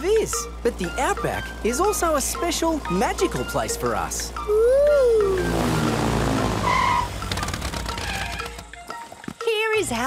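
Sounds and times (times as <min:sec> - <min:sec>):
background music: 0:00.0 - 0:10.0
propeller plane engine rattling: 0:05.6 - 0:08.8.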